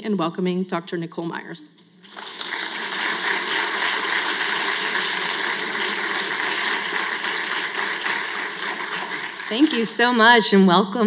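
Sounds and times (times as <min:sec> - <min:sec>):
audience applauding: 0:02.0 - 0:10.2.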